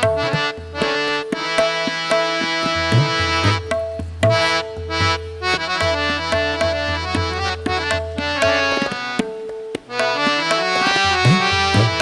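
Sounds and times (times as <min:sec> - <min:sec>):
harmonium melody: 0:00.0 - 0:12.0
light tabla strokes: 0:00.0 - 0:12.0.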